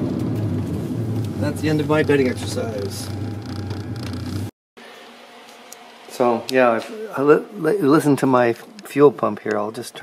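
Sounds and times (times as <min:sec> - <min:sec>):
car engine hum inside cabin: 0:00.0 - 0:04.5.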